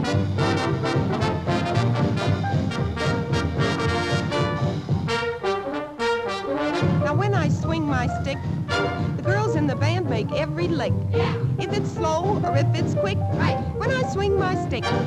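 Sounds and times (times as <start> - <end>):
big band swing music: 0.0 - 15.0
woman singing: 11.6 - 15.0.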